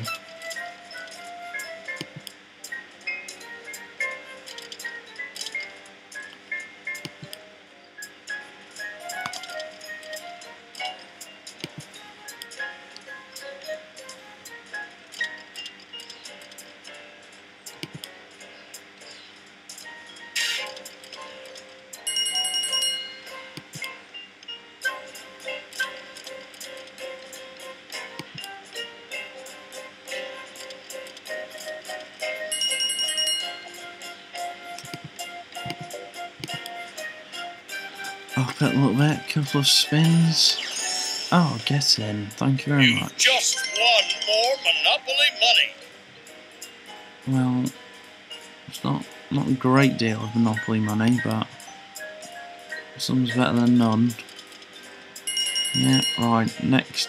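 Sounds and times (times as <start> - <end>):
slot game melodic notes: 20.0 - 20.8, 31.4 - 54.2, 54.9 - 57.0
bright chiming jingle: 22.1 - 23.3, 32.5 - 33.7, 42.8 - 45.7, 55.3 - 56.6.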